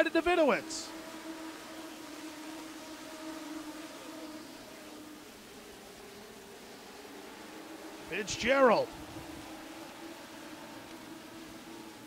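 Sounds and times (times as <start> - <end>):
faint race car engine drone: 0.0 - 12.0.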